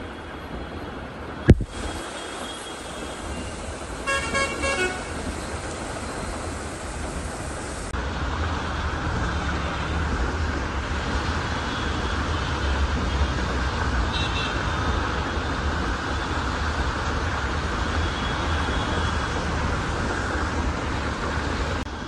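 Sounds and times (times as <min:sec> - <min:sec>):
bus and car engines rumbling: 0:00.0 - 0:22.0
heavy rain: 0:00.0 - 0:22.0.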